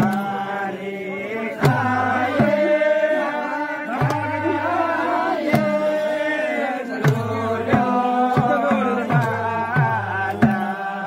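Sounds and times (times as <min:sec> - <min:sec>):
group singing folk song: 0:00.0 - 0:11.0.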